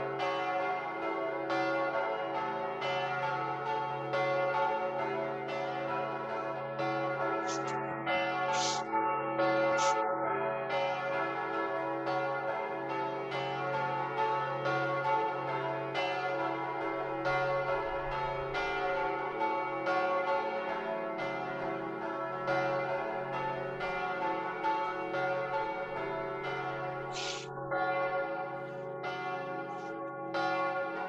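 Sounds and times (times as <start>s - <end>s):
church bells ringing: 0.0s - 31.0s.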